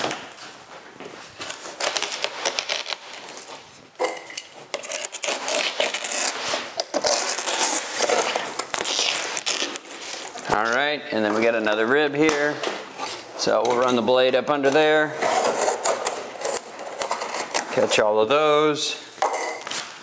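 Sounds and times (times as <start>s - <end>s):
brittle fabric crackling and tearing: 1.4s - 3.6s, 4.7s - 10.7s.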